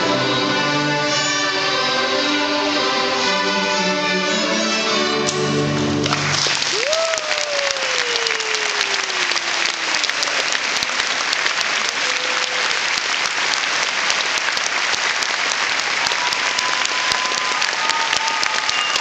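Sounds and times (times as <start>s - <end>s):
audience applauding: 6.0s - 19.0s
faint cheers: 6.6s - 10.6s, 11.8s - 13.0s, 16.0s - 19.0s.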